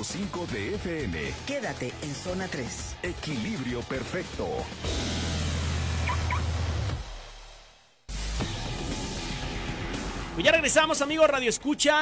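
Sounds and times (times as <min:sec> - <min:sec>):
short rising chirps: 0:06.0 - 0:06.6.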